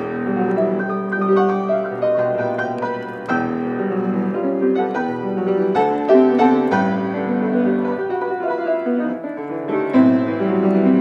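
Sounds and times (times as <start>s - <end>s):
grand piano playing: 0.0s - 11.0s.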